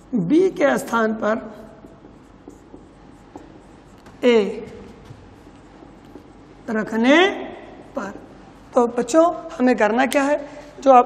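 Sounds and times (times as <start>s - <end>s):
marker scratching on whiteboard: 0.0s - 9.2s
marker tip tapping: 1.8s - 6.5s.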